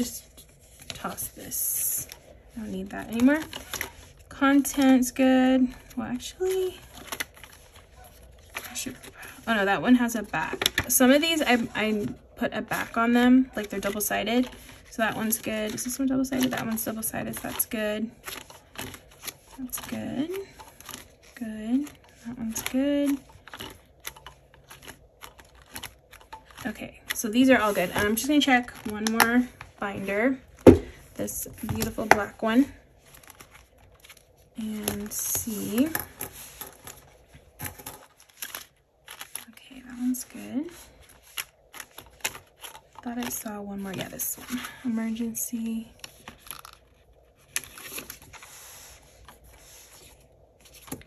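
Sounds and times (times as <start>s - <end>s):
paper and plastic sleeves rustling: 0.0s - 51.0s
plastic pages crinkling: 0.0s - 51.0s.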